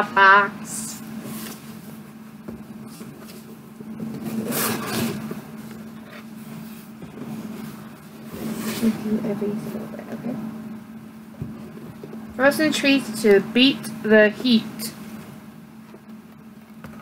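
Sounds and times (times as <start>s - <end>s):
steady low hum: 0.0s - 17.0s
cardboard rustling and scraping: 1.2s - 9.2s.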